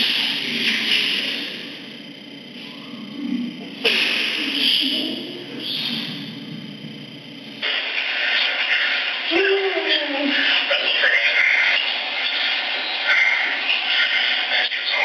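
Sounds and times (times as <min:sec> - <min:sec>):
muffled talk of people: 0:09.3 - 0:13.4.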